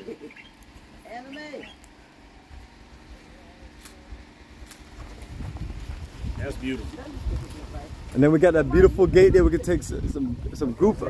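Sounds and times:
wind rumbling on microphone: 2.5s - 11.0s.

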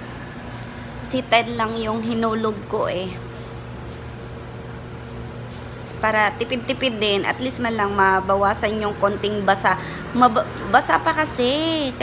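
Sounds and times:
laundromat machines humming: 0.0s - 12.0s.

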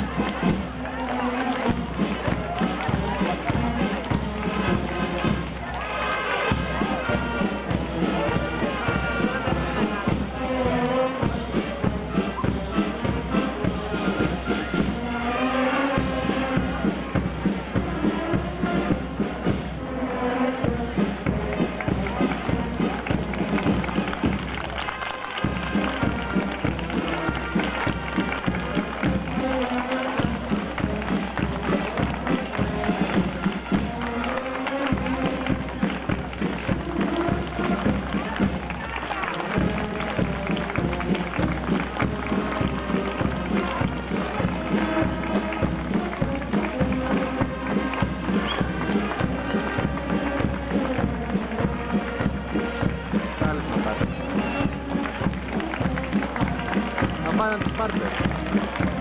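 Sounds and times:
brass marching band playing: 0.0s - 59.0s.

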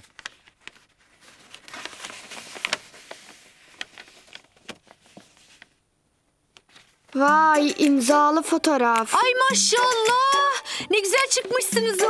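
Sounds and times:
paper envelope tearing and crinkling: 0.0s - 5.7s.

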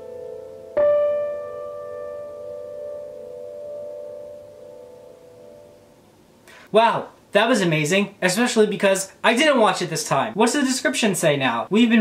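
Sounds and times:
piano chord ringing: 0.0s - 6.0s.

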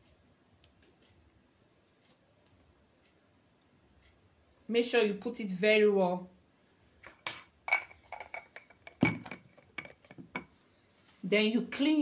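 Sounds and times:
containers clicking and knocking: 7.0s - 10.5s.

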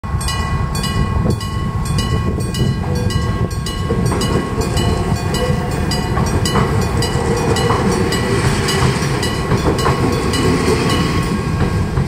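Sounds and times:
electric train rumbling: 0.0s - 12.0s
level crossing bell ringing: 0.1s - 11.2s.

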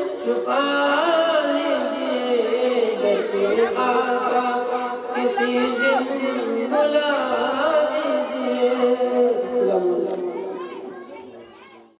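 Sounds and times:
faint children's voices: 0.0s - 12.0s
man singing over loudspeaker: 0.0s - 12.0s.

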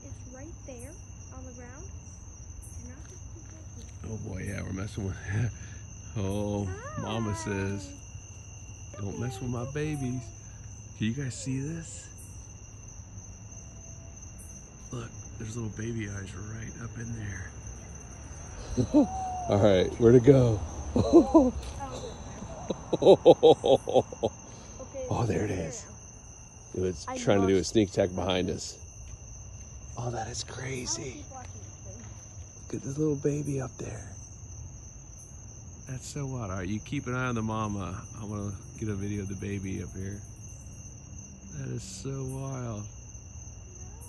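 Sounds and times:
crickets trilling: 0.0s - 44.0s.

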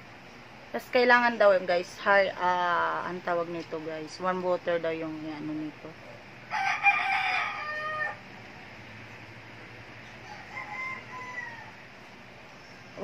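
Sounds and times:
rooster crowing: 6.5s - 8.4s, 10.0s - 11.9s.

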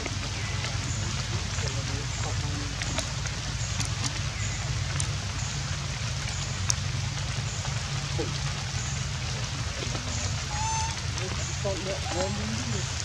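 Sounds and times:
low rumble: 0.0s - 13.0s
steady rain hiss: 0.0s - 13.0s
short high steady-pitched call: 10.5s - 11.0s.

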